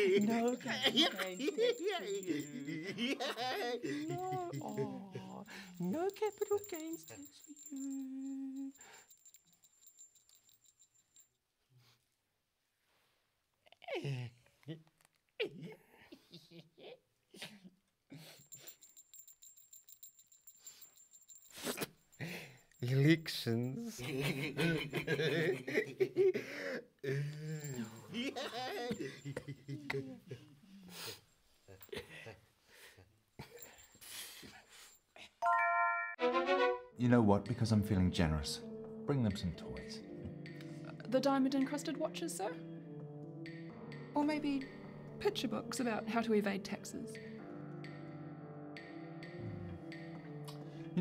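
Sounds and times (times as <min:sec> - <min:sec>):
bell-like chime jingle: 0:00.0 - 0:03.1, 0:03.8 - 0:11.3, 0:18.5 - 0:24.9, 0:35.4 - 0:36.2.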